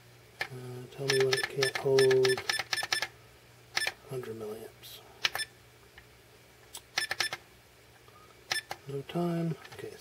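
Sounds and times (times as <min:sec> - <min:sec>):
push buttons clicking: 0:00.4 - 0:03.1, 0:06.8 - 0:07.4.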